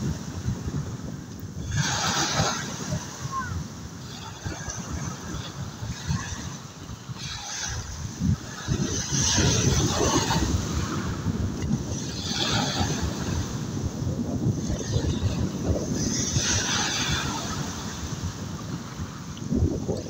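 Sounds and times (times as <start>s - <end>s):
sea waves washing: 0.0s - 20.0s
wind buffeting microphone: 0.0s - 20.0s.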